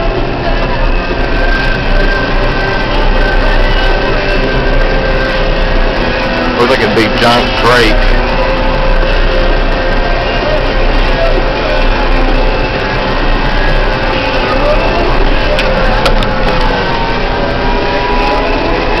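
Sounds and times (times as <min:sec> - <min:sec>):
faint music: 0:00.0 - 0:19.0
vehicle engine and road noise: 0:00.0 - 0:19.0.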